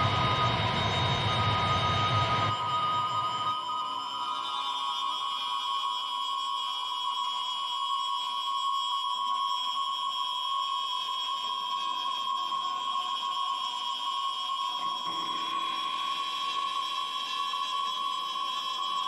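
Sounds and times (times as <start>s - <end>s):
drone music from guitars: 0.0s - 3.7s, 14.8s - 19.0s.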